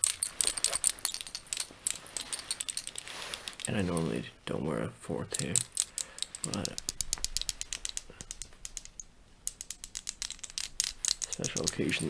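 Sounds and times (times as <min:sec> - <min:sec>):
metal rings clinking: 0:00.0 - 0:04.2, 0:05.4 - 0:12.0.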